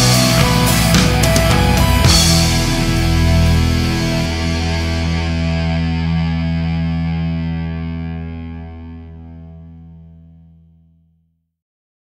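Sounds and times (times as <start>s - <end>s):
distorted electric guitar chord ringing: 0.0s - 10.6s.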